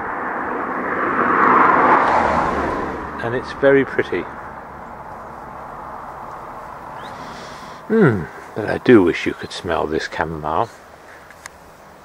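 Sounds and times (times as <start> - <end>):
vehicle passing by: 0.0 - 11.0.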